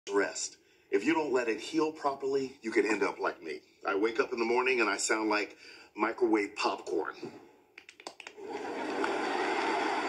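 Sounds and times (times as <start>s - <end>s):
joints cracking and popping: 7.8s - 8.4s.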